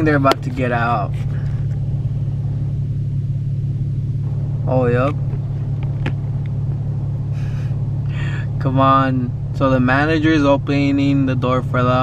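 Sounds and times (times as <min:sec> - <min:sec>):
low engine rumble in car cabin: 0:00.0 - 0:12.0.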